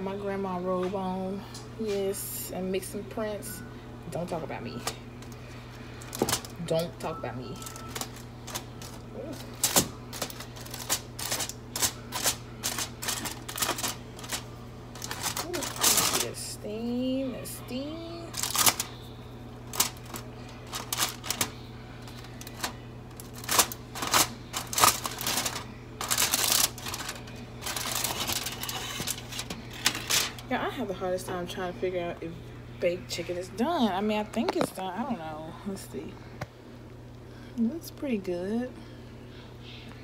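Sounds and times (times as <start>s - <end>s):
steady low hum: 0.0s - 40.0s
aluminium foil crinkling: 4.7s - 16.6s, 17.7s - 30.6s.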